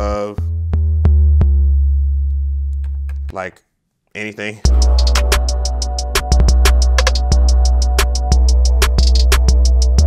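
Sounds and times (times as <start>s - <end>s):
deep sub-bass notes: 0.0s - 3.3s, 4.7s - 10.0s.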